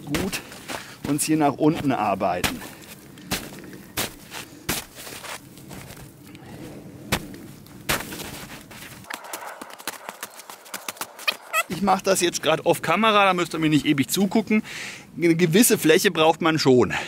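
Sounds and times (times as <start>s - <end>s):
snow crunching and scraping: 0.0s - 12.0s
boot kicking into snow: 1.8s - 6.0s.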